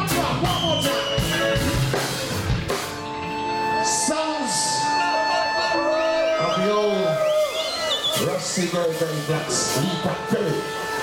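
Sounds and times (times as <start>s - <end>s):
live reggae band: 0.0s - 11.0s.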